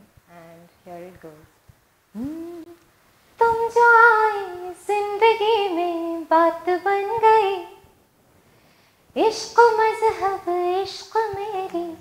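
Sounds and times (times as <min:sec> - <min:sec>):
woman singing unaccompanied: 0:03.4 - 0:07.9, 0:09.2 - 0:12.0.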